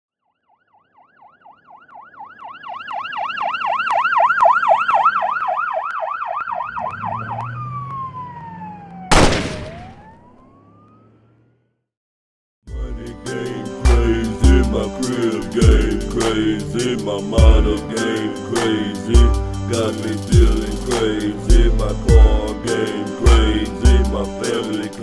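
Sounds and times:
emergency vehicle siren yelping: 0.3 - 11.6.

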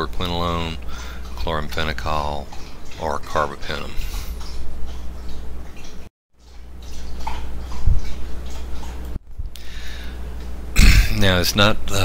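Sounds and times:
low electrical hum: 0.0 - 12.0
man clearing his throat: 10.8 - 11.2.

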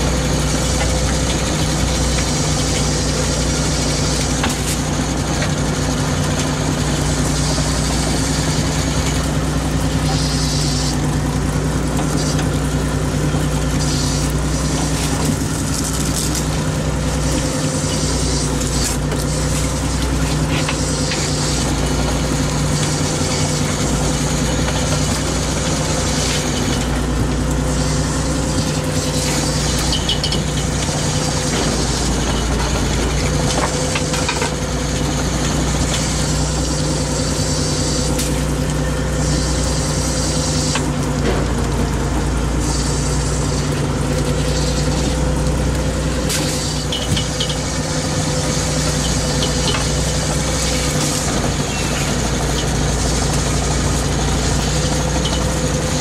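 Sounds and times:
boat engine and net hauler droning: 0.0 - 56.0
hiss: 9.9 - 11.2, 12.0 - 12.6, 13.4 - 26.9, 35.6 - 41.0, 42.6 - 45.4, 46.2 - 56.0.

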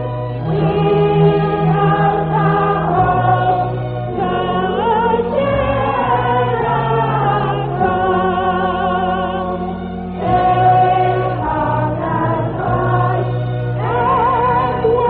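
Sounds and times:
choir singing a hymn: 0.0 - 15.0.

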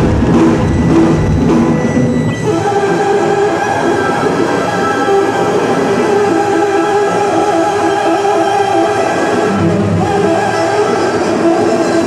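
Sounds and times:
distorted electric bass: 0.0 - 3.5
drums: 0.0 - 12.0.

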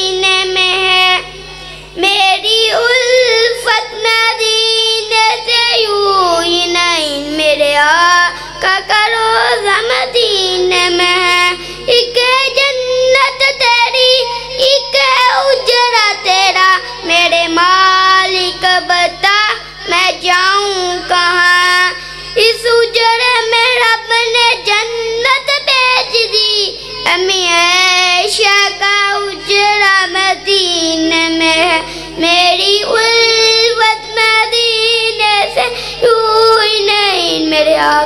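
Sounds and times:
boy singing unaccompanied: 0.0 - 38.0
breaths: 1.4 - 2.0, 8.3 - 8.6, 11.6 - 11.9, 31.8 - 32.2, 35.7 - 36.0.

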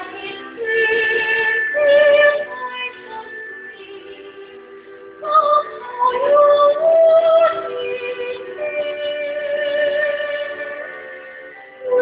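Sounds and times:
karaoke backing track: 0.0 - 12.0.

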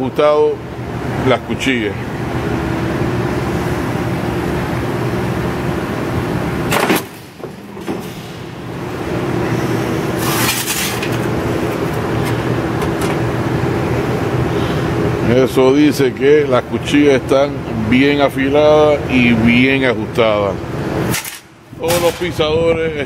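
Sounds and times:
plate shear humming: 2.2 - 15.2, 20.6 - 23.0
blade shearing metal sheet crack: 6.7 - 7.4, 10.2 - 12.4, 21.1 - 22.4.

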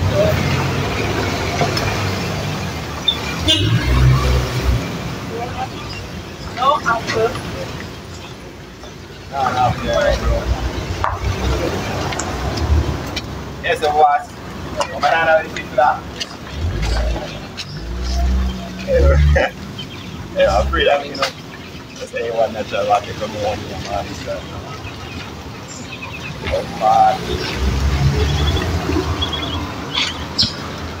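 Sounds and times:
people talking indistinctly: 0.0 - 30.6
road traffic: 0.0 - 31.0
car engine rumbling past: 26.4 - 30.8.

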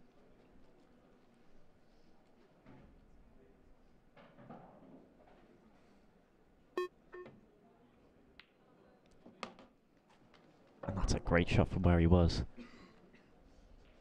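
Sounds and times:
soft clicks of cue and balls: 4.1 - 5.9, 8.3 - 10.9.

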